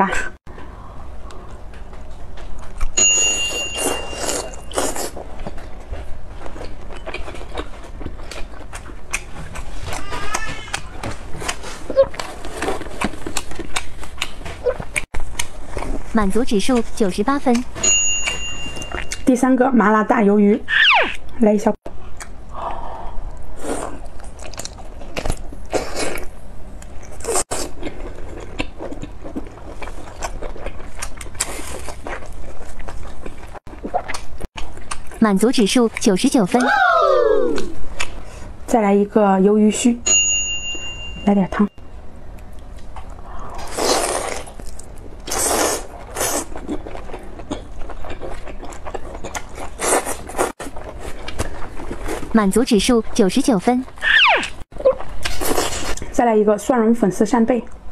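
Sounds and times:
person biting and chewing: 3.8s - 5.7s, 6.6s - 16.0s, 23.4s - 35.2s, 42.8s - 52.3s, 54.0s - 56.1s
slurping broth: 43.5s - 44.4s.

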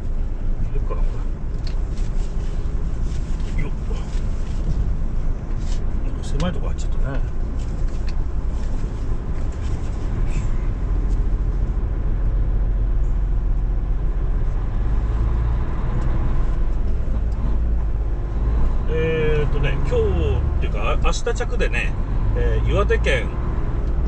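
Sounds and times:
truck diesel engine rumbling: 0.0s - 24.0s
man speaking: 18.9s - 23.3s.

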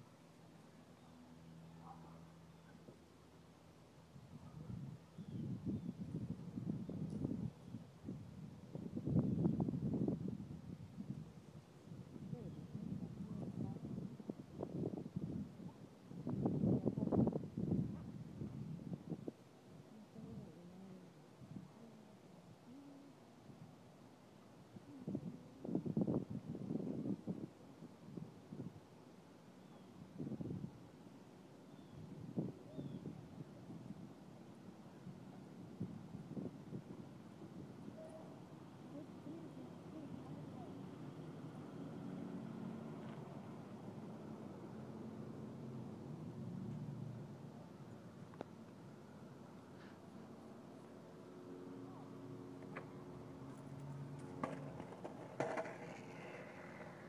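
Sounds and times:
indistinct low voices: 19.8s - 23.3s.

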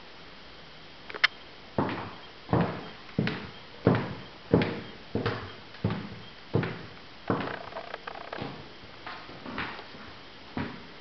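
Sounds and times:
footsteps on wooden floor: 1.8s - 10.9s.

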